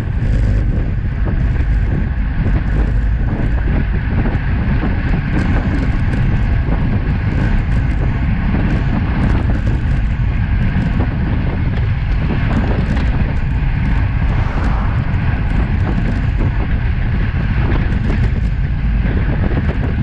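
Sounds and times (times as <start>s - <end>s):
road tyre noise: 0.0s - 20.0s
wind rushing over microphone: 0.0s - 20.0s.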